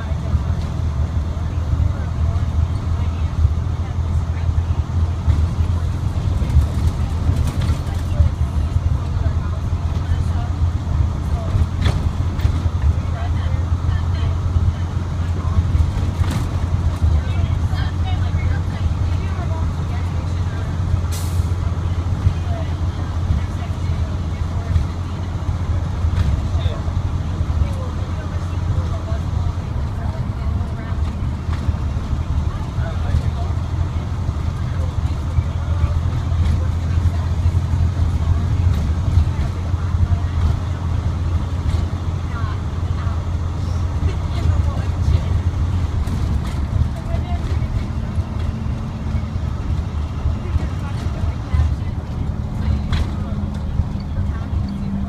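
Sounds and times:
diesel engine droning: 0.0s - 55.0s
road noise: 0.0s - 55.0s.

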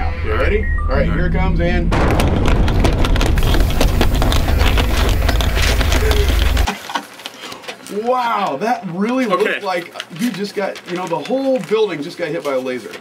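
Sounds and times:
crackling rumbling blast: 1.2s - 6.7s.

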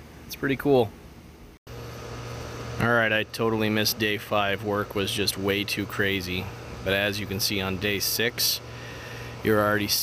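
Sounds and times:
low machine hum: 0.0s - 10.0s
man speaking: 0.3s - 0.9s, 2.8s - 8.7s, 9.4s - 10.0s.

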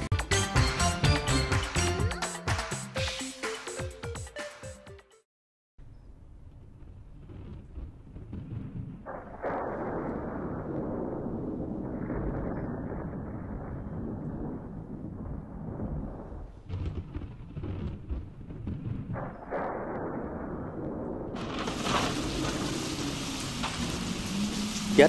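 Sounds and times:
low rumbling thunder: 6.6s - 25.0s
heavy rain: 21.4s - 25.0s.

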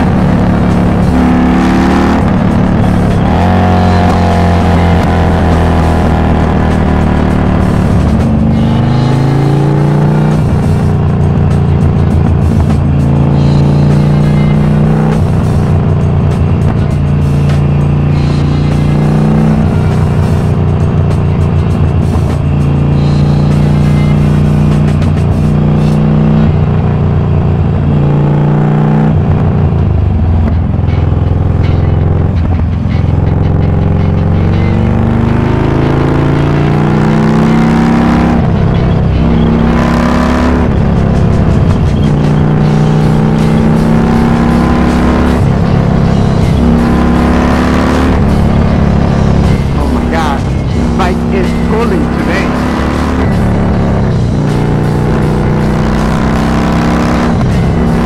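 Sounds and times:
motorcycle engine at speed: 0.0s - 58.0s.

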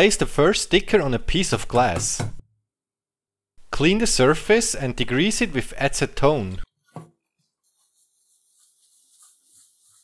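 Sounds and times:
paper towel rubbing on glass: 7.4s - 10.0s.

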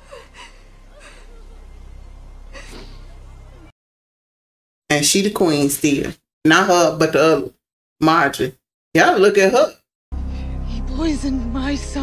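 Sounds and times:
low rumble: 10.2s - 12.0s.

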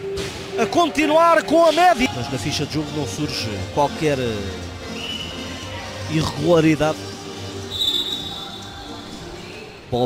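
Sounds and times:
referee's whistle long note: 7.7s - 8.7s.

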